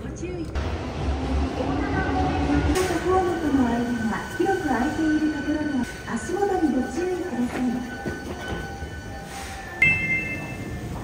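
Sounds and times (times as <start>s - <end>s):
train rumble inside carriage: 0.0s - 11.0s.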